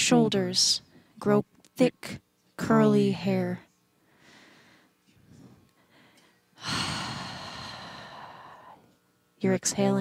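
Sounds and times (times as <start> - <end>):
breathy exhale: 5.8 - 8.8.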